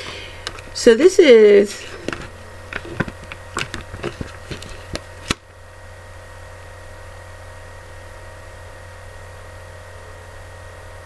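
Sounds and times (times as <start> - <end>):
faint whine tones: 0.0 - 11.0
low hum with hiss: 0.0 - 11.0.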